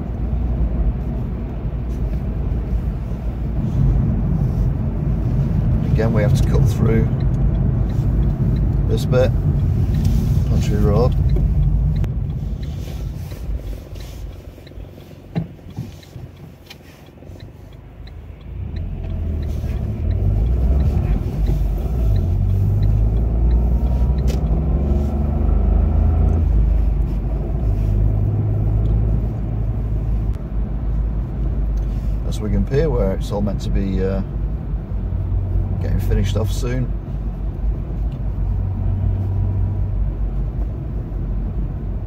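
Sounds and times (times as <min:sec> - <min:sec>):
engine and road rumble: 0:00.0 - 0:42.0
faint regular ticking: 0:02.3 - 0:40.2.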